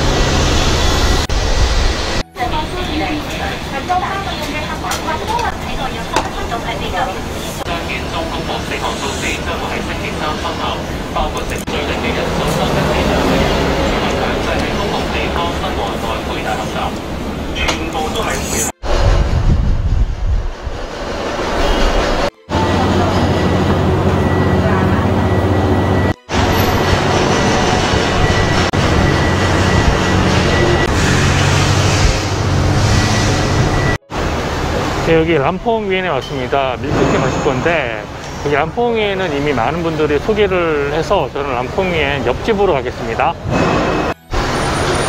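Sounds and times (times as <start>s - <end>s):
low traffic hum: 0.0s - 45.0s
voices talking: 2.3s - 18.8s, 22.3s - 26.6s.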